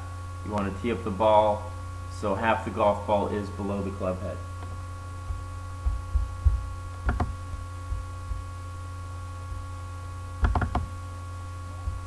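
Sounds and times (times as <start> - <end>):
electrical mains hum: 0.0 - 12.0
low bumps: 5.2 - 8.6.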